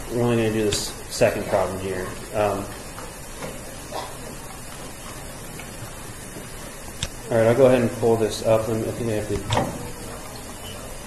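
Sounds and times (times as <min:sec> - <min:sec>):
recording background hiss: 0:00.0 - 0:11.0.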